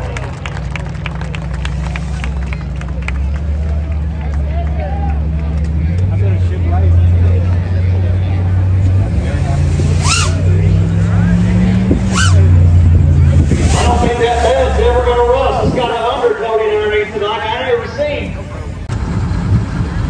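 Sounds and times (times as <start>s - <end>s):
crowd voices and shouts: 0.0s - 19.0s
pickup engine revving: 0.6s - 20.0s.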